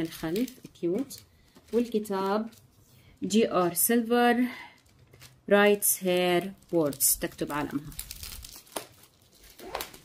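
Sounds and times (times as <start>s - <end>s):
book and packaging rustling: 0.0s - 10.0s.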